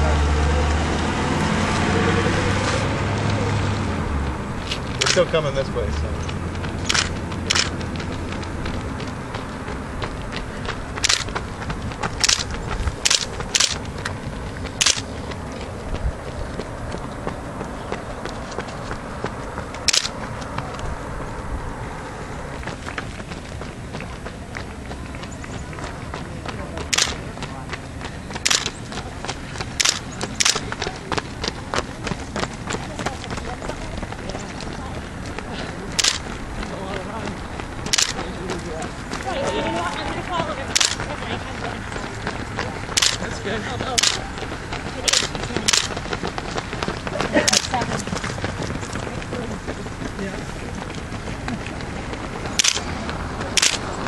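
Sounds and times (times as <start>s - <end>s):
runners on paved road: 0.0s - 54.0s
sharp snaps: 5.0s - 5.3s, 6.8s - 7.9s, 11.0s - 11.4s, 12.1s - 14.2s, 14.8s - 15.1s, 19.8s - 20.2s, 26.9s - 27.2s, 28.4s - 28.7s, 29.8s - 30.8s, 36.0s - 36.3s, 37.9s - 38.2s, 40.8s - 41.1s, 43.0s - 43.2s, 44.0s - 44.2s, 45.1s - 46.0s, 52.6s - 52.9s, 53.6s - 53.9s.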